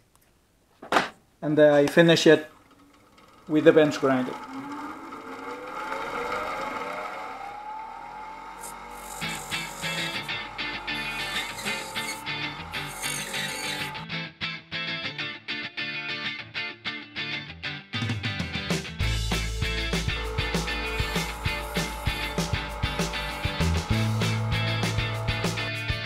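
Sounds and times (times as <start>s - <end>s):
bench grinder motor whine: 2.1s - 14.0s, 19.0s - 26.0s
guitar music with steady beat: 14.0s - 26.0s.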